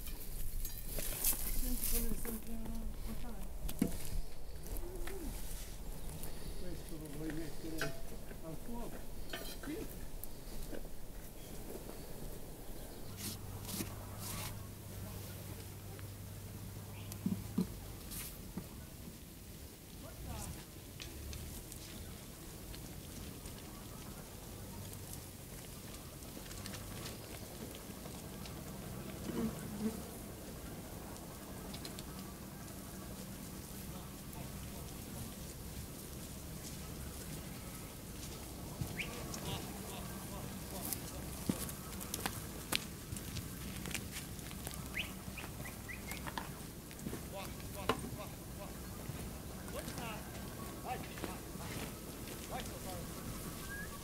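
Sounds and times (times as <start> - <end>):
hooves pattering on paved road: 0.0 - 54.0.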